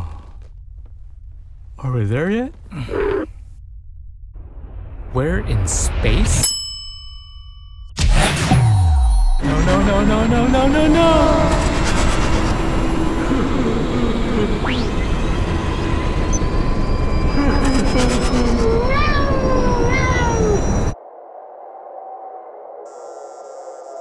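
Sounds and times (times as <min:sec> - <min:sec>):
faint hum: 0:09.4 - 0:21.0
loud steady rumbling: 0:09.4 - 0:21.0
cat meowing: 0:18.7 - 0:20.8.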